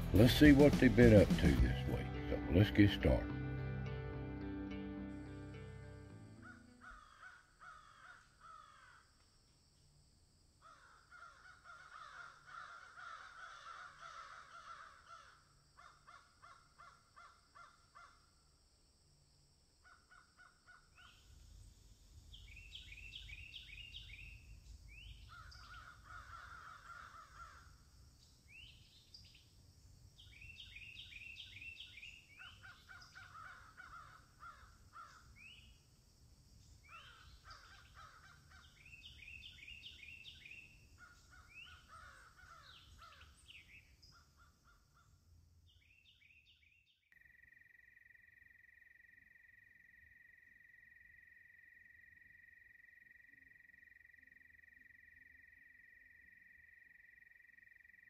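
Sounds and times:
crows cawing faintly: 6.3s - 9.4s, 10.6s - 18.5s, 19.8s - 21.3s, 25.0s - 28.0s, 31.3s - 35.7s, 36.8s - 45.3s.

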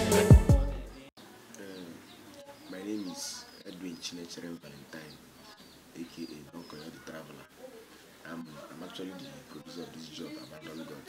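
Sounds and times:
birds chirping: 0.1s - 11.0s.

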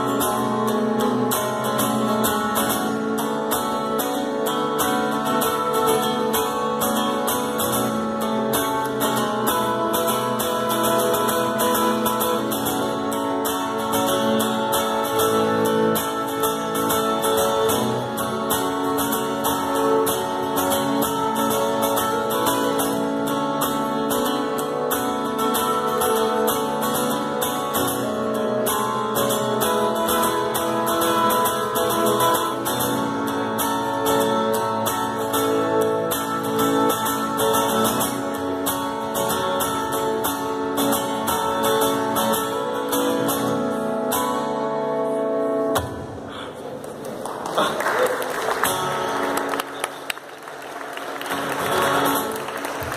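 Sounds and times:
acoustic guitar strumming: 0.0s - 47.0s, 47.6s - 52.9s.

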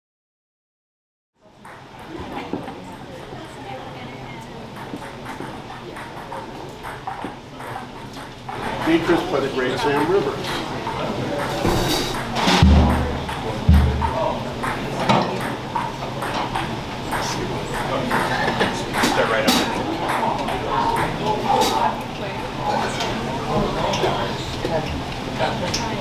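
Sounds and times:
low talk: 1.8s - 26.0s
taps on drums and cymbals: 11.7s - 16.4s.

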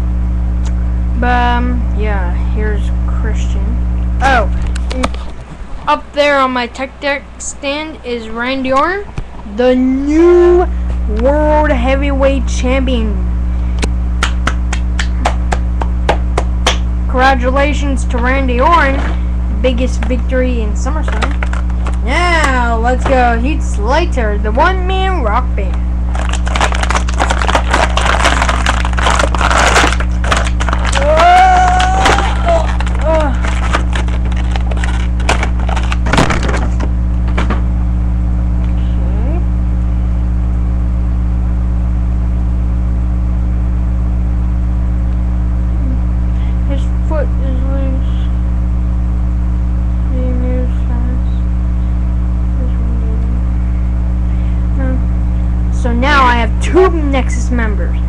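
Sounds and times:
low electrical hum: 0.0s - 58.0s
hands clapping: 14.2s - 16.9s.

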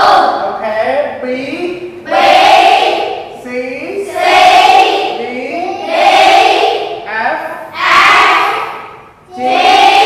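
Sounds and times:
children chanting in unison: 0.0s - 0.4s, 2.0s - 3.4s, 4.0s - 7.0s, 7.7s - 10.0s.

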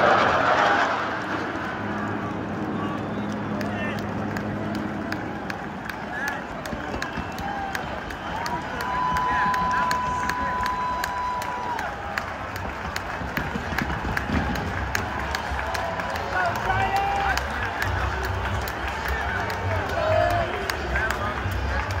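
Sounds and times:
crowd din: 0.0s - 22.0s
fans calling out: 1.4s - 22.0s.

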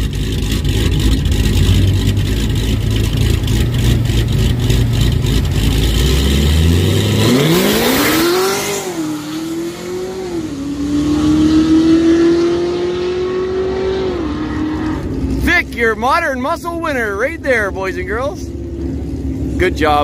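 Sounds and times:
car engine idling and launching: 0.0s - 20.0s.

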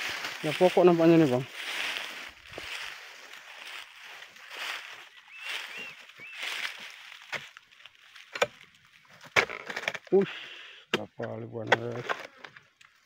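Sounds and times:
footsteps rustling through dry grass: 0.0s - 9.2s.

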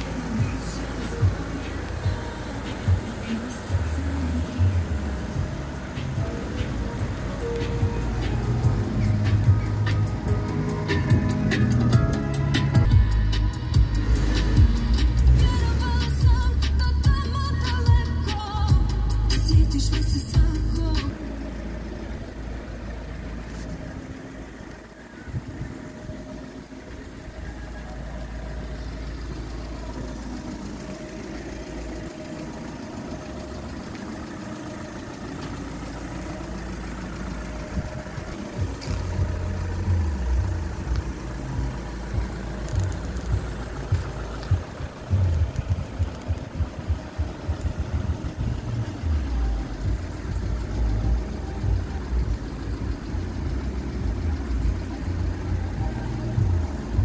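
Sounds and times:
diesel engine idling: 0.0s - 57.0s
irregular low thumps: 40.6s - 49.0s.

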